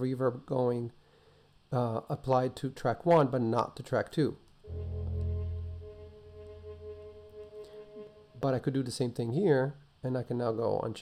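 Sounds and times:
viola note with reverb: 4.7s - 8.6s.

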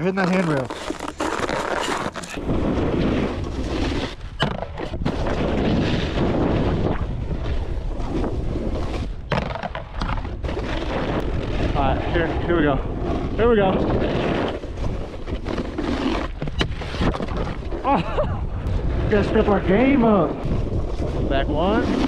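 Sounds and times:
snowboard scraping on snow: 0.0s - 9.2s, 10.5s - 17.2s, 18.7s - 22.0s
wind on microphone: 1.7s - 22.0s.

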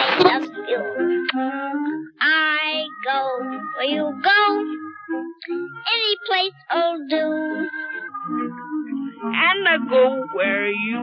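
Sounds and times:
high voice singing: 0.0s - 11.0s.

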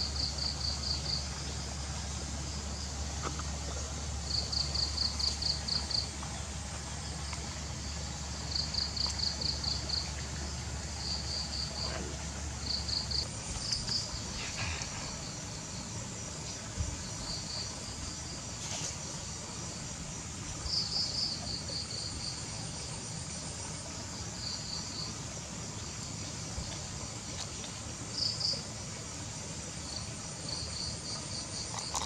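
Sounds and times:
insects chirping in pulsed trills: 0.0s - 32.0s
steady high insect hiss: 0.0s - 32.0s.

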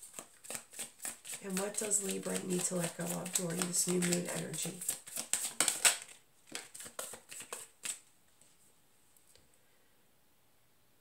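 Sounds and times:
cards being shuffled: 0.0s - 8.5s.

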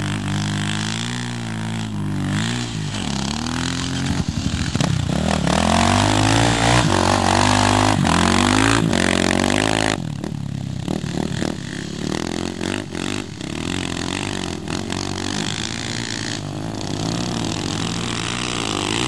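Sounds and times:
dirt bike engine revving: 0.0s - 19.0s
distant dirt bike engines: 0.0s - 19.0s.

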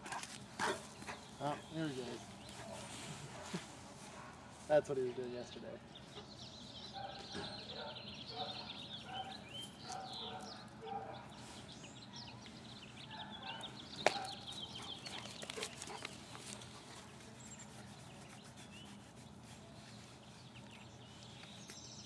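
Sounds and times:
birds chirping and clucking: 0.0s - 19.5s.

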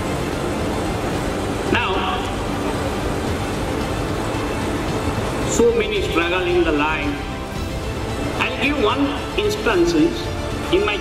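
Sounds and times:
hall background rumble and hiss: 0.0s - 11.0s.

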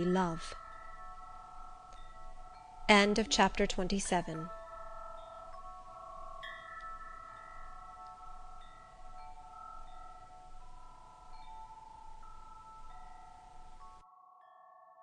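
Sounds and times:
wind chimes ringing: 0.0s - 15.0s.

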